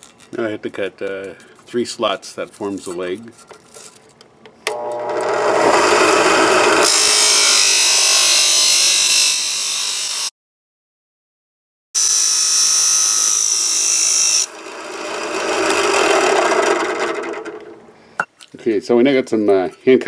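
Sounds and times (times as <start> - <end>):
cut-off wheel grinding steel: 4.7 - 10.3, 12.0 - 18.0.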